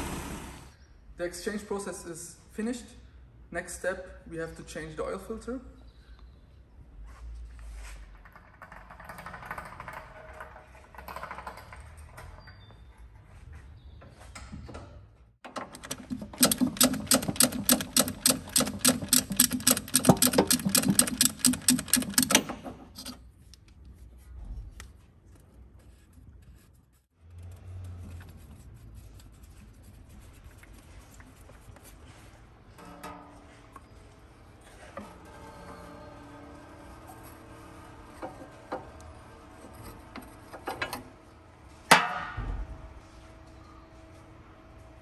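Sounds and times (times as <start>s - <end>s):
clatter of tools and parts: 7.8s - 13.3s, 15.4s - 23.8s
ratchet tool clicking rapidly: 16.2s - 23.1s.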